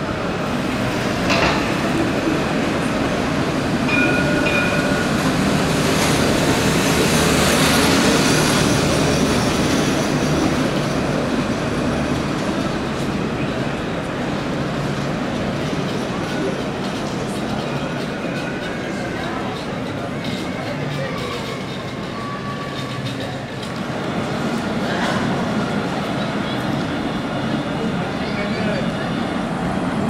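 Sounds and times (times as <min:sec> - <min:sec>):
trams rolling past: 0:00.0 - 0:30.0.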